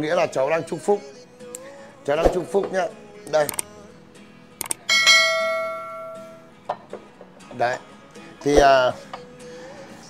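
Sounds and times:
light clicks: 0:03.5 - 0:03.7, 0:04.6 - 0:04.8
bright bell-like ring: 0:04.9 - 0:06.5.

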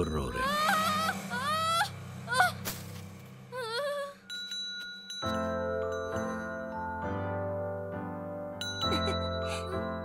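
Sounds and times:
small handbell ringing: 0:04.3 - 0:06.8, 0:08.6 - 0:09.4.

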